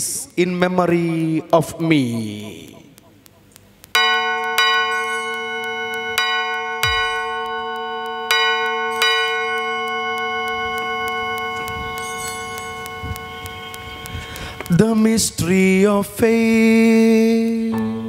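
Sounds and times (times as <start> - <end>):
church bell ringing: 4.0 - 14.0.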